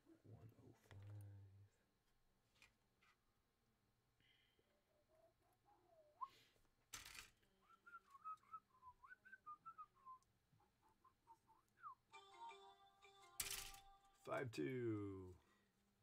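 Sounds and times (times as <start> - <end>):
person whistling a tune: 7.6 - 10.2, 11.5 - 12.7.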